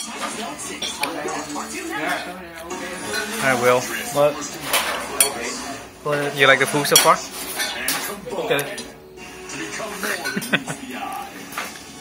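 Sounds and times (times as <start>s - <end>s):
utensils clinking against bowl: 0.0s - 9.0s, 9.8s - 11.9s.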